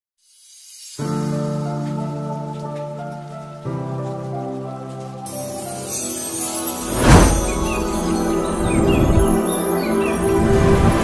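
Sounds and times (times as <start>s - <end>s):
pattering hiss: 5.2s - 8.7s
sustained chord: 6.4s - 10.8s.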